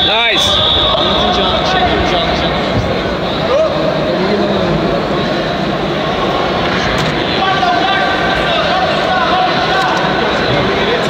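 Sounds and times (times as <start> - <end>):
continuous rushing noise: 0.0 - 11.0
indistinct voices: 0.0 - 11.0.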